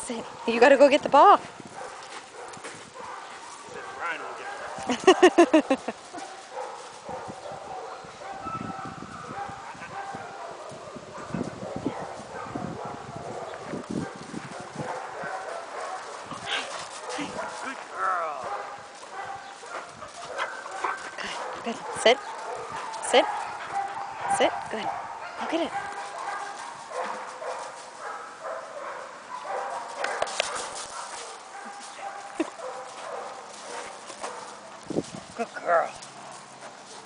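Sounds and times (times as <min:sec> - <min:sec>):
paws crunching on gravel: 0:01.4 - 0:07.6, 0:09.4 - 0:37.0.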